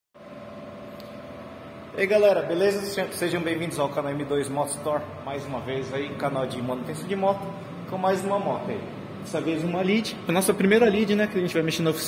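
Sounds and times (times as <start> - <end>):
steady mechanical hum with tones: 0.2 - 12.0.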